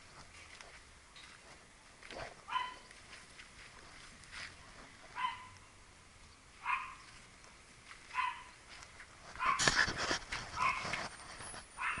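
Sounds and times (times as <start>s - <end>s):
dog barking: 2.5s - 2.8s, 5.2s - 5.6s, 6.6s - 7.0s, 8.1s - 8.5s, 9.4s - 9.7s, 10.6s - 10.9s, 11.8s - 12.0s.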